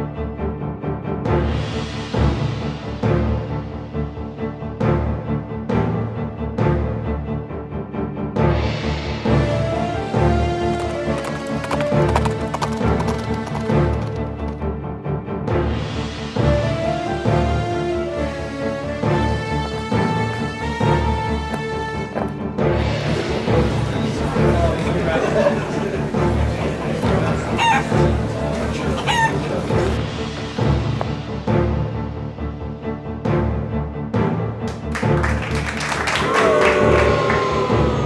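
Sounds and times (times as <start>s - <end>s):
background music: 0.0s - 38.0s
horse hooves clip-clopping: 10.3s - 14.6s
chicken calls: 27.4s - 29.9s.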